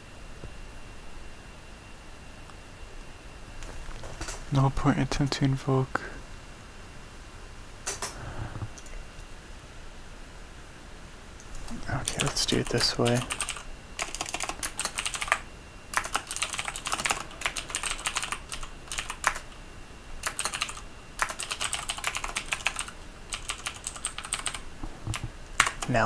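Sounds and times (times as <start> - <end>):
typing on computer keyboard: 12.0 - 19.5, 20.2 - 26.0.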